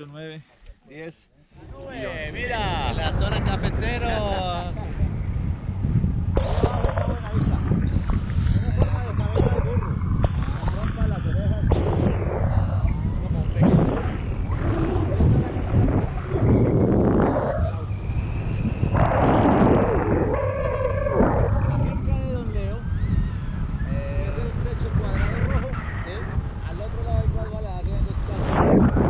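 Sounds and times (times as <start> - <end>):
wind buffeting microphone: 1.5 - 29.0.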